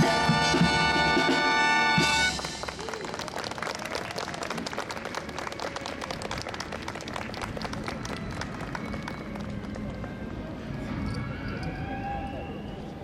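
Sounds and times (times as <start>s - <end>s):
audience applauding: 2.3s - 10.0s.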